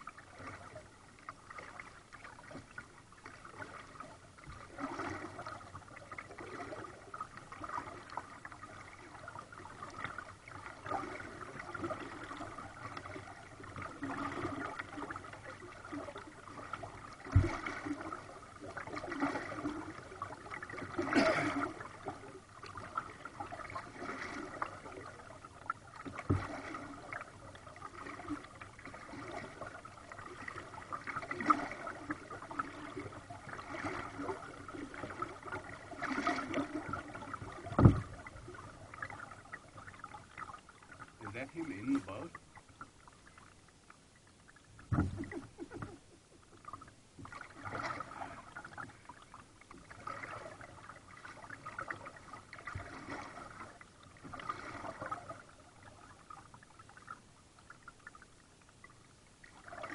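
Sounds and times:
kayak paddle splashing water: 0:00.0 - 0:59.9.

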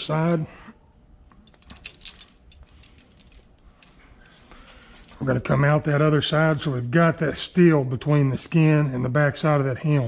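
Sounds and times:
light metallic clinks of chain: 0:01.2 - 0:10.0.

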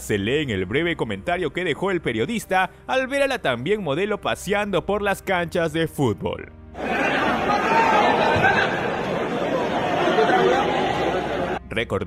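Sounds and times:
crowd talking: 0:06.8 - 0:11.6.

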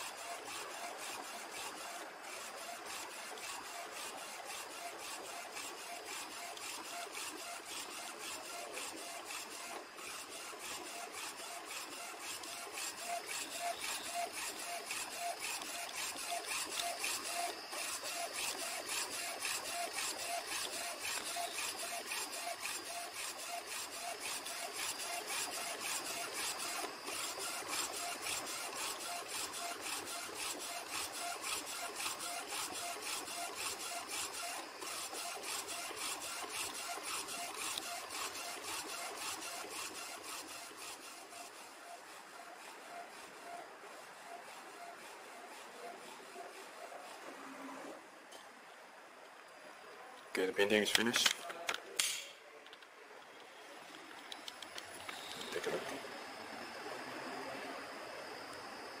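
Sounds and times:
printer carriage whirring: 0:00.0 - 0:48.0.

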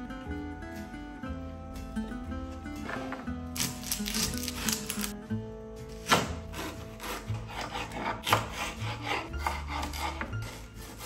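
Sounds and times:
knife slicing onion: 0:03.6 - 0:05.2, 0:05.9 - 0:11.0.

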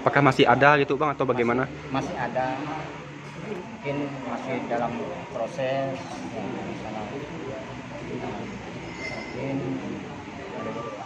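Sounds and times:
busy indoor hall noise: 0:00.0 - 0:11.0.

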